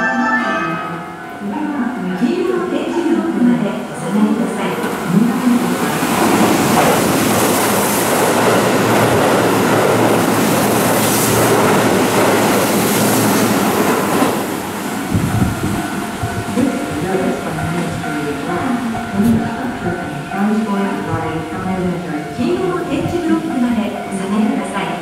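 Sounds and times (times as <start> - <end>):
train wheels rushing on rail: 2.2 - 25.0.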